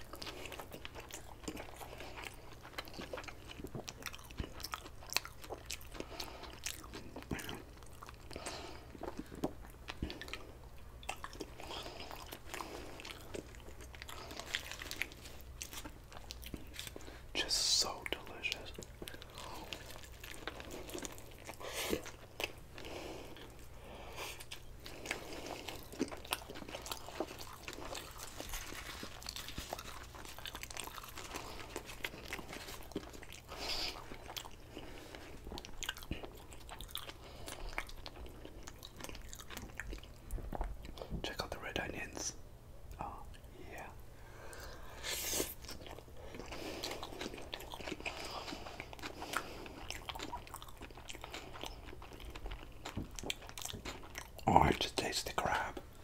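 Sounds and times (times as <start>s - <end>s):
close chewing with wet mouth sounds: 0.0s - 42.2s, 42.8s - 56.0s.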